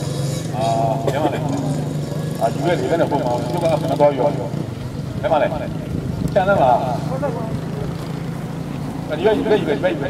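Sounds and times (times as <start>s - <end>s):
man speaking through loudspeakers: 2.4s - 4.6s, 5.2s - 7.8s, 9.1s - 10.0s.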